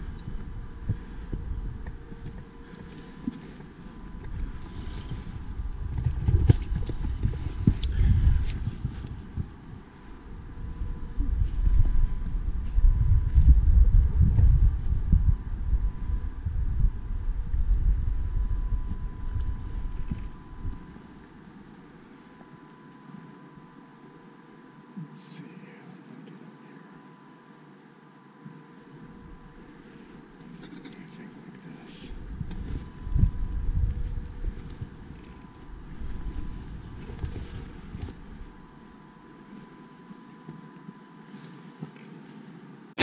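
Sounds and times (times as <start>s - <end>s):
wind buffeting microphone: 0.0s - 2.9s, 3.6s - 21.0s, 32.1s - 38.8s.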